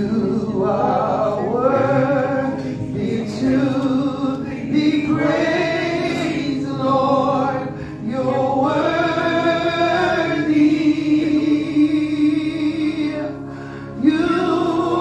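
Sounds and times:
choir singing through microphones: 0:00.0 - 0:15.0.

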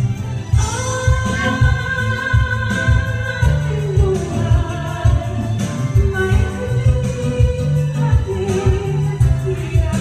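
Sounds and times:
backing track with bass beat: 0:00.0 - 0:10.0
woman singing into a microphone: 0:00.0 - 0:10.0.

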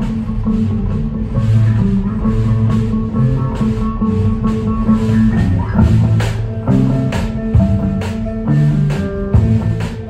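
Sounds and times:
drum kit hits: 0:00.0 - 0:10.0
electric guitars sustained low notes: 0:00.0 - 0:10.0.

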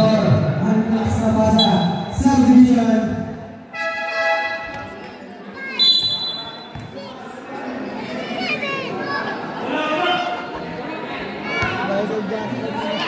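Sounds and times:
people shouting and chattering: 0:00.0 - 0:13.0
referee's whistle blast: 0:01.6 - 0:02.1, 0:05.8 - 0:06.7.

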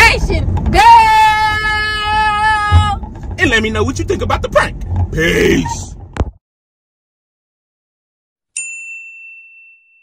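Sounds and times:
bright bell-like ding: 0:08.6 - 0:10.0.

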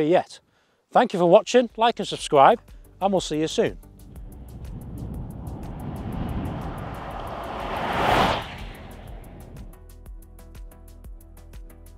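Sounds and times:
car driving past: 0:04.1 - 0:09.8.

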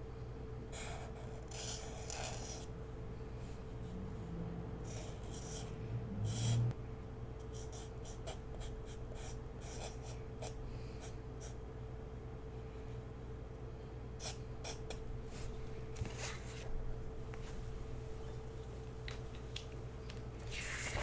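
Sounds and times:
steady low hum: 0:00.0 - 0:21.0
marker scratching on paper: 0:00.7 - 0:02.7, 0:04.8 - 0:05.7, 0:06.3 - 0:06.6, 0:07.4 - 0:10.6, 0:14.2 - 0:15.0.

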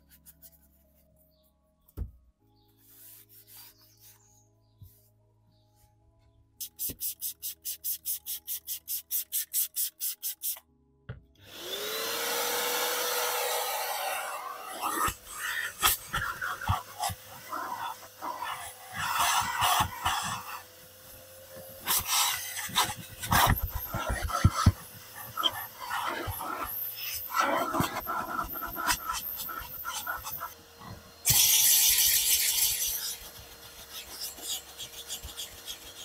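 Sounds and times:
vacuum nozzle rasping on carpet: 0:11.5 - 0:36.0
steam cleaner hissing: 0:13.1 - 0:36.0.

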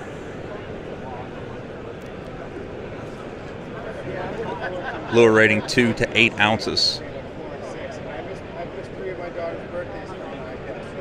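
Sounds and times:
crowd chatter: 0:02.6 - 0:07.9
hall background noise: 0:04.8 - 0:07.1.

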